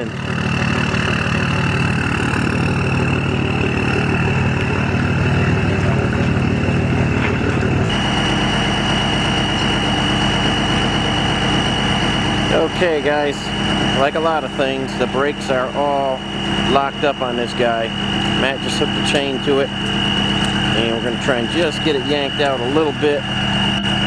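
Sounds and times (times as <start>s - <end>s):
diesel engine idling: 0.0s - 24.0s
high whine: 0.0s - 24.0s.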